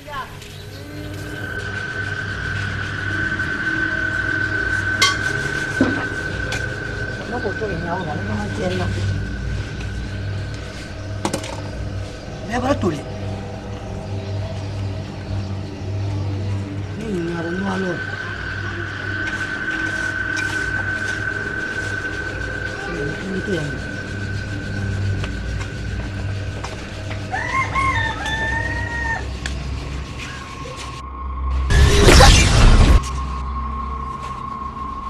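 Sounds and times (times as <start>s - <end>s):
engine humming: 0.0s - 35.0s
rooster crowing: 0.8s - 7.2s, 27.0s - 29.6s.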